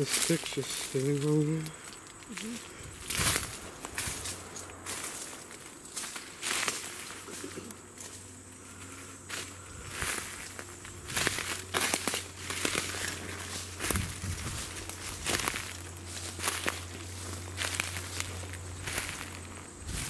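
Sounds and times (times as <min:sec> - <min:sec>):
footsteps crunching through dry leaves: 0:00.0 - 0:20.0
low steady hum: 0:00.0 - 0:20.0.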